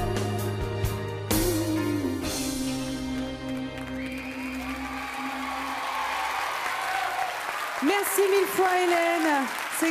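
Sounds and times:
audience applause: 0:03.1 - 0:09.9.

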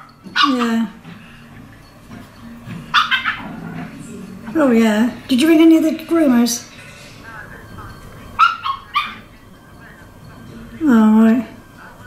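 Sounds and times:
dogs yipping: 0:00.0 - 0:01.1, 0:02.8 - 0:04.3, 0:08.4 - 0:09.4.

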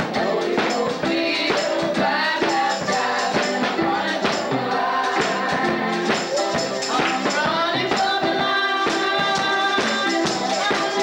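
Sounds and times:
group singing gospel: 0:00.0 - 0:11.0
tambourine beat: 0:00.0 - 0:11.0.

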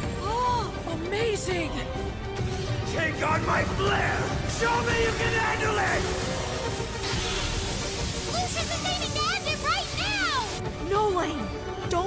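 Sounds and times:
battle background music: 0:00.0 - 0:12.0.

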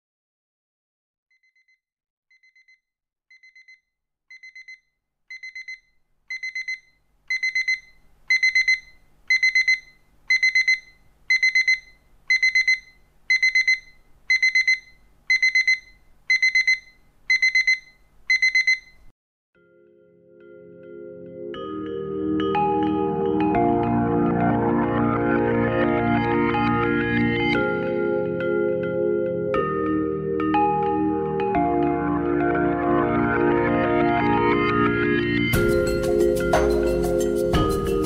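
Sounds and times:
alarm clock beeping: 0:01.4 - 0:19.0.

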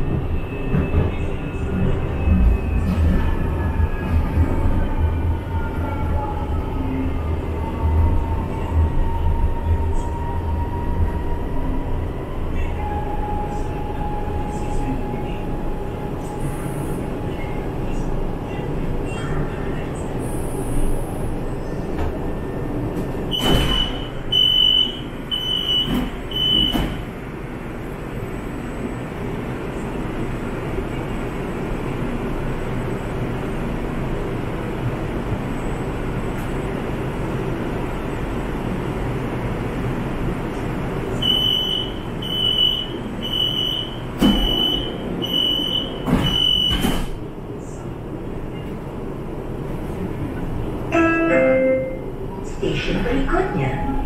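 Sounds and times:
train humming: 0:00.0 - 0:54.0
train doors thudding: 0:21.9 - 0:27.2, 0:41.2 - 0:47.3
door warning chime beeps: 0:23.3 - 0:26.9, 0:41.2 - 0:46.9.

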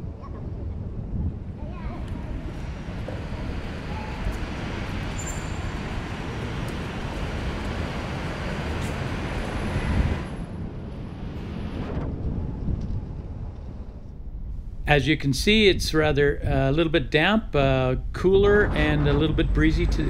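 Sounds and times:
wind on microphone: 0:00.0 - 0:05.0
city traffic: 0:00.0 - 0:11.8.

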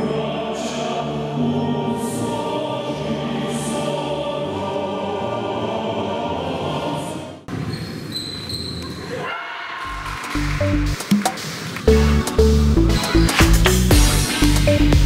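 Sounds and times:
choir singing: 0:00.0 - 0:07.5.

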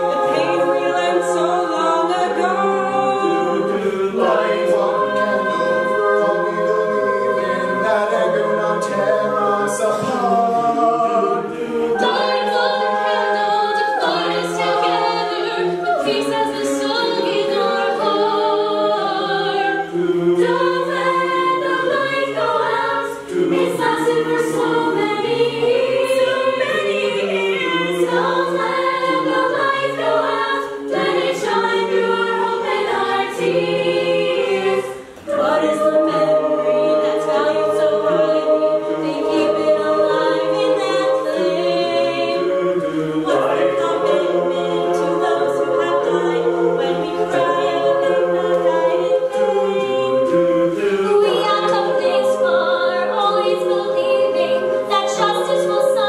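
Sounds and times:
sung backing harmonies: 0:00.0 - 0:56.0.

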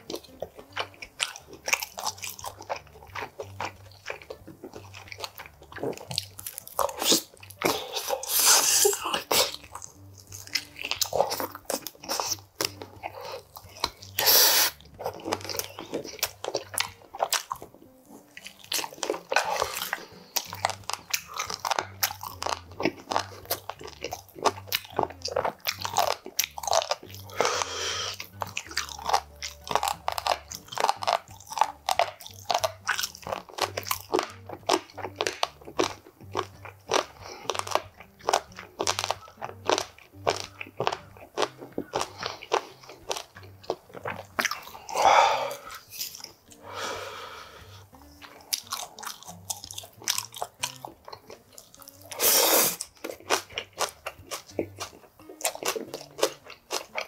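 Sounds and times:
crunching and chewing: 0:00.0 - 0:57.0.

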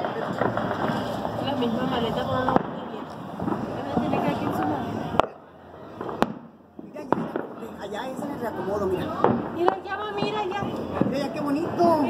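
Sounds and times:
sharp bangs: 0:00.0 - 0:08.0.

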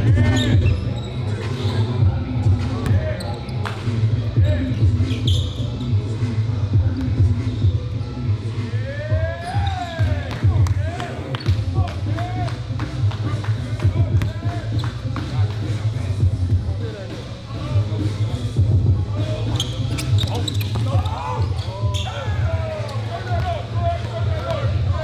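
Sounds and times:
shoe squeaks: 0:00.0 - 0:02.0, 0:02.8 - 0:03.8, 0:04.4 - 0:06.0, 0:09.4 - 0:10.2, 0:19.2 - 0:23.5
steady low beat: 0:06.3 - 0:08.0, 0:10.0 - 0:16.9, 0:17.7 - 0:19.6.

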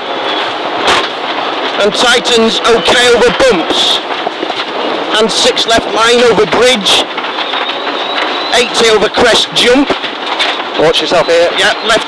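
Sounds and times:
rally car cabin noise: 0:00.0 - 0:12.0.

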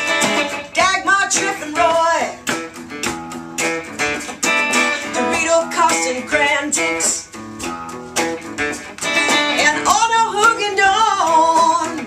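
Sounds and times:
woman singing: 0:00.0 - 0:02.6, 0:04.8 - 0:07.4, 0:09.2 - 0:12.0
acoustic guitar strummed: 0:00.0 - 0:12.0.

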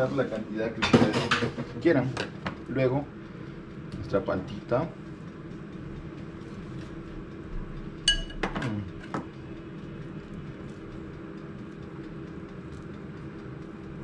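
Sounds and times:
steady low hum: 0:00.0 - 0:14.0
utensil clinking on ceramic dish: 0:08.1 - 0:09.2.

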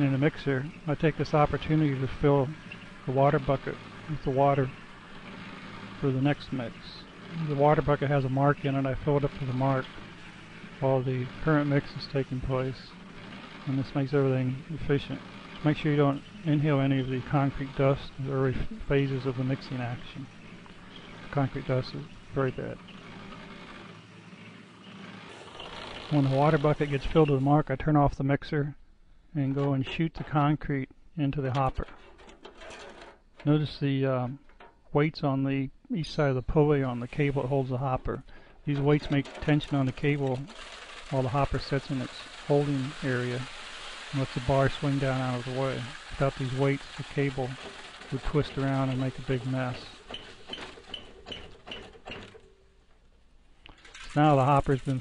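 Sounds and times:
mechanical squeak: 0:00.0 - 0:27.7, 0:31.5 - 0:33.8, 0:36.7 - 0:52.6
concrete mixer humming: 0:00.0 - 0:27.8, 0:36.2 - 0:52.5, 0:53.6 - 0:55.0.

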